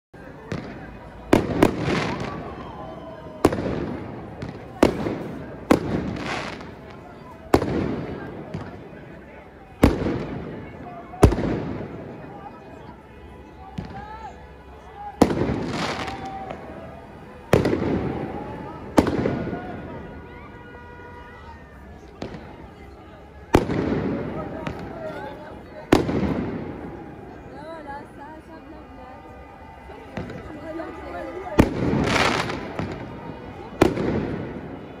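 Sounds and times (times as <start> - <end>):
crowd voices: 0.1 - 35.0
fireworks rumble and crackle: 0.2 - 35.0
fireworks bangs: 0.4 - 12.4, 13.6 - 14.4, 15.1 - 27.3, 29.9 - 35.0
small firework pops: 0.5 - 2.7, 3.4 - 8.9, 11.2 - 11.9, 13.7 - 14.1, 22.0 - 22.6, 23.5 - 25.1, 25.9 - 26.7, 30.2 - 30.6, 31.6 - 33.1, 33.8 - 34.5.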